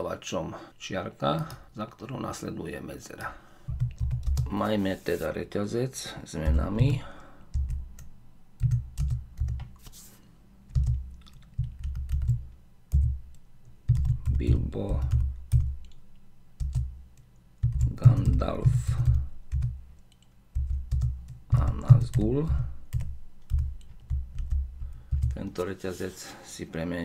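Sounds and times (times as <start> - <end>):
typing on computer keyboard: 3.7 - 4.5, 7.5 - 9.8, 10.7 - 13.2, 13.9 - 16.0, 16.6 - 16.9, 17.6 - 22.2, 22.9 - 25.4.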